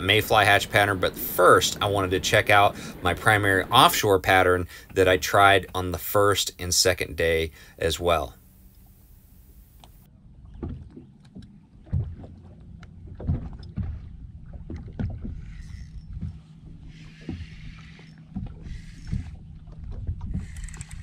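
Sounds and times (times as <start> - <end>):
waves slapping against boat hull: 0.0 - 7.3, 8.1 - 21.0
low steady hum: 0.0 - 21.0.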